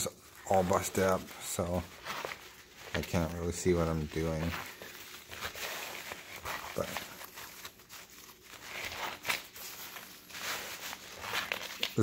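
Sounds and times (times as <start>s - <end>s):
rain jacket fabric rustling: 0.0s - 12.0s.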